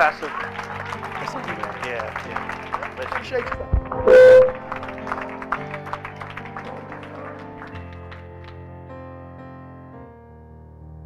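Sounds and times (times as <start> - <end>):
electronic keyboard chords: 1.2 - 11.0.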